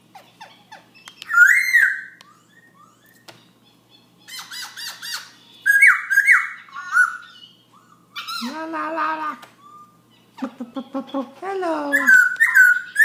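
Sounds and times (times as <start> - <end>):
bird whistling song: 1.0 - 8.5, 9.6 - 10.0, 12.0 - 13.0.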